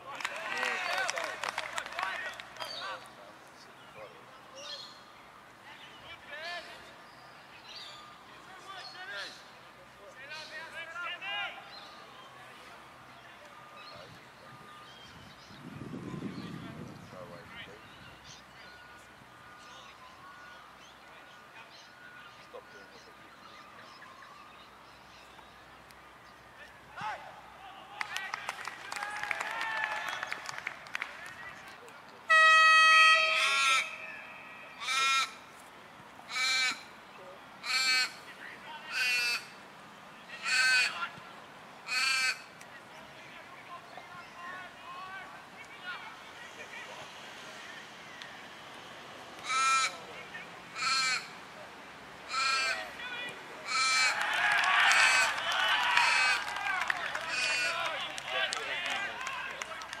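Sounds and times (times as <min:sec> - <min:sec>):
voices shouting and calling: 0:00.0 - 0:15.3, 0:16.0 - 1:00.0
horn-like tone: 0:32.3 - 0:33.8
raven cawing: 0:34.8 - 0:35.4, 0:36.3 - 0:37.0, 0:37.6 - 0:38.2, 0:38.9 - 0:39.6, 0:40.4 - 0:41.0, 0:41.8 - 0:42.5, 0:49.4 - 0:50.0, 0:50.7 - 0:51.4, 0:52.3 - 0:52.9, 0:53.6 - 0:56.4, 0:57.3 - 0:57.8.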